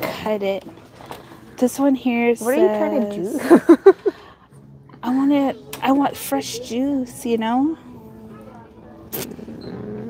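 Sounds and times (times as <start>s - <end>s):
soft talking: 1.8s - 3.7s, 4.9s - 9.6s.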